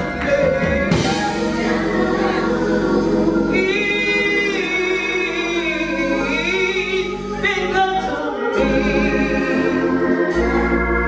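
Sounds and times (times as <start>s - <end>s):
voices singing along: 0.0s - 11.0s
woman singing gospel: 0.0s - 11.0s.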